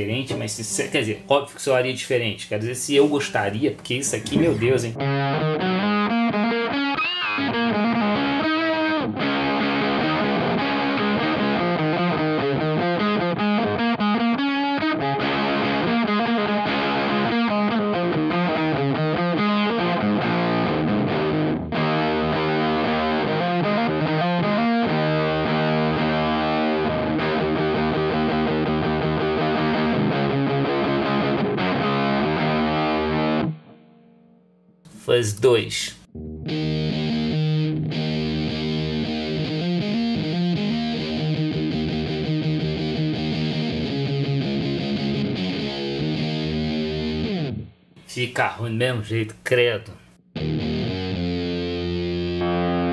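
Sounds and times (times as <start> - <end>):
distorted electric guitar: 4.1 - 34.3, 36.1 - 47.8, 50.4 - 52.9.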